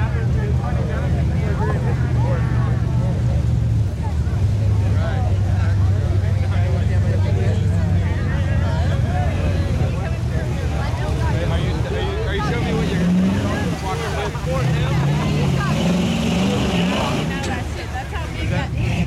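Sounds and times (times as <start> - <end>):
truck engine running under load: 0.0 - 19.0
voices chattering: 0.0 - 19.0.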